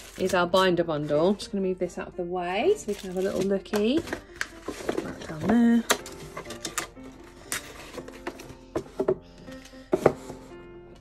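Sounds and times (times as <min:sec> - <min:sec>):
soft background music: 0:00.0 - 0:11.0
paper rustling: 0:02.8 - 0:08.8.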